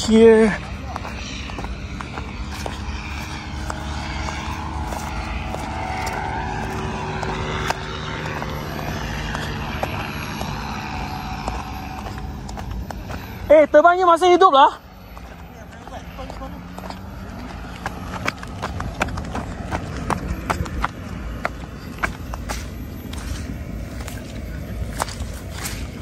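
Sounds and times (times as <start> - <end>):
small jet turbine whine: 0.0 - 26.0.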